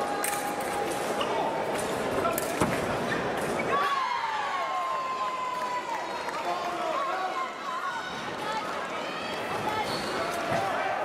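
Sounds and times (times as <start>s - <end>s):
voices in a large room: 0.0s - 11.0s.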